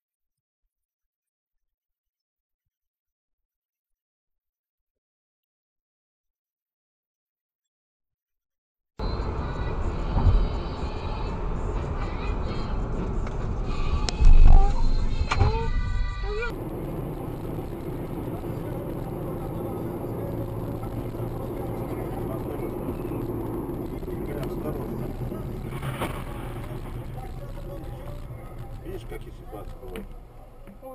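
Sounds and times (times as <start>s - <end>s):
car engine and road noise: 9.0s - 30.9s.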